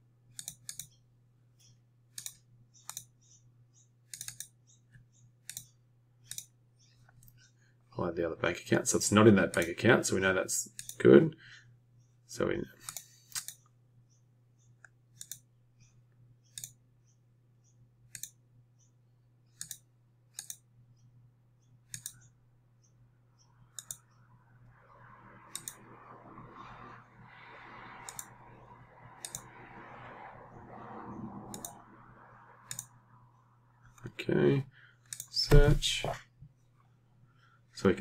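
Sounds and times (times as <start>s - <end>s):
computer mouse clicks: 0.3s - 1.0s, 1.6s - 7.5s, 9.5s - 9.7s, 10.7s - 11.0s, 12.8s - 13.7s, 14.6s - 16.8s, 18.1s - 18.9s, 19.5s - 20.7s, 21.6s - 24.2s, 25.5s - 25.8s, 28.0s - 28.4s, 29.2s - 29.5s, 31.5s - 31.8s, 32.6s - 33.0s, 35.0s - 35.7s.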